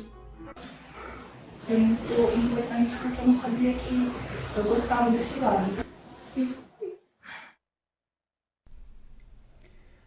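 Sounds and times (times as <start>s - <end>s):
person breathing or sighing: 0.7s - 1.4s, 7.2s - 7.6s.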